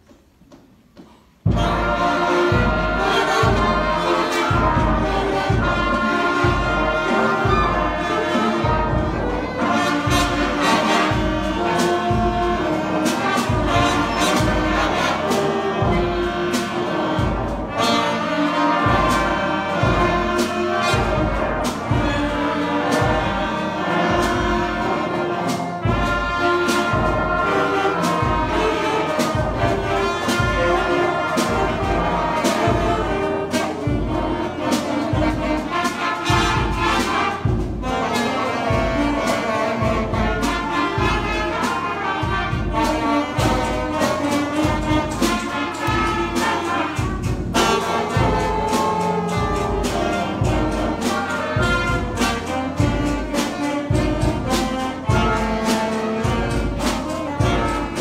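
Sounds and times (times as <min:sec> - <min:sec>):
concert band playing: 0:01.1 - 0:58.0
brass and trombones: 0:01.4 - 0:58.0
steady drum beat: 0:01.4 - 0:58.0.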